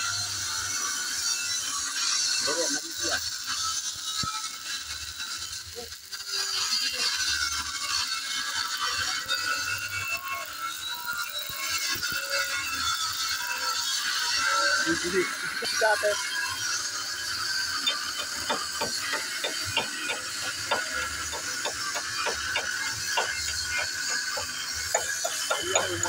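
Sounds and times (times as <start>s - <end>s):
welding arc crackling and hissing: 0.0s - 26.0s.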